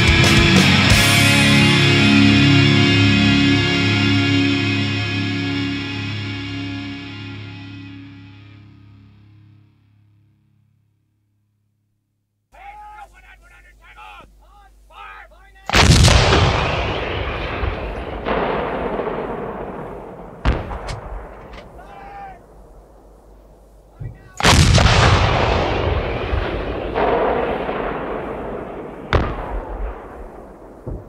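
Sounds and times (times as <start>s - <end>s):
sharp gunshot cracks: 15.7s - 21.8s, 24.0s - 31.0s
heavy explosions: 15.7s - 31.0s.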